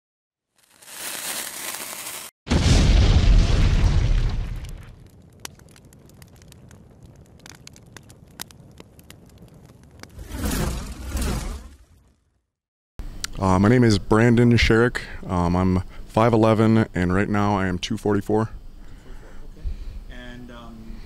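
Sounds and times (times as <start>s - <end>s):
faint crackles: 0.6s - 2.3s, 3.3s - 12.2s
loud deep boom: 2.5s - 5.0s.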